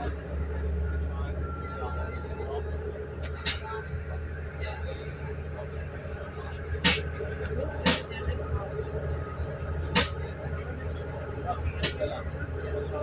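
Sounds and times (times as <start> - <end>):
train low rumble: 0.0 - 13.0.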